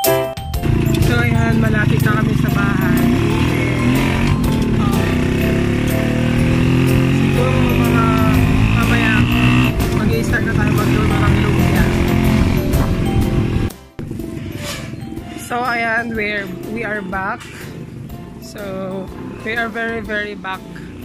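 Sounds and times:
small motorcycle engine running: 0.6s - 21.0s.

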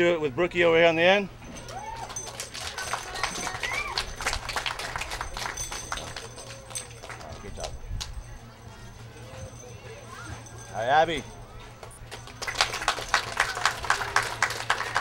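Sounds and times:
faint voices: 0.0s - 15.0s
small crowd clapping: 1.7s - 8.2s, 11.8s - 15.0s.

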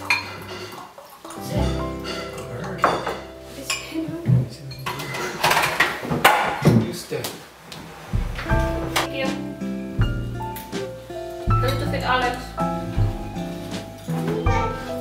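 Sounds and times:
background music: 0.0s - 5.0s, 8.1s - 15.0s
utensils clinking on plates: 0.0s - 6.7s.

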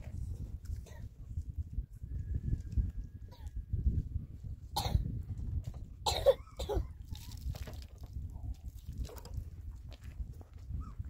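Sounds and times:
person coughing: 4.8s - 5.1s, 6.0s - 6.9s.

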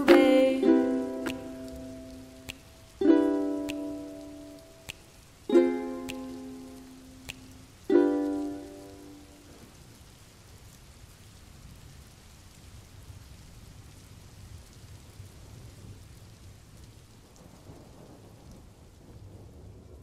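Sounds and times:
ukulele chord ringing: 0.0s - 4.9s, 5.5s - 9.5s
steady rainfall: 0.0s - 20.0s
low rumble of thunder: 11.5s - 20.0s.

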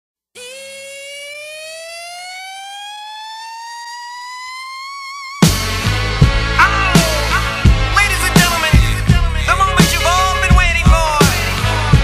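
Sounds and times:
rising siren-like synth tone: 0.4s - 5.9s.

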